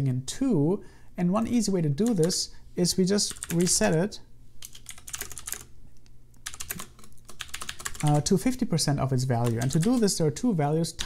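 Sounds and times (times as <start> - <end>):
typing on computer keyboard: 2.0 - 2.3, 3.3 - 3.8, 4.6 - 5.7, 6.4 - 8.3, 9.4 - 10.1.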